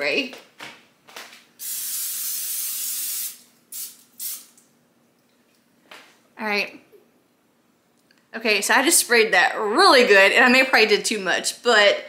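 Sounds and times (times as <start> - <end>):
aerosol spray hissing: 1.6 - 4.6.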